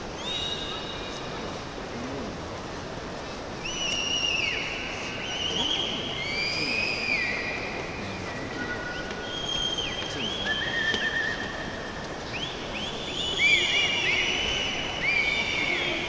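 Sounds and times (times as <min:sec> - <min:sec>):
stadium crowd hubbub: 0:00.0 - 0:16.0
high whistle-like tones: 0:08.6 - 0:16.0.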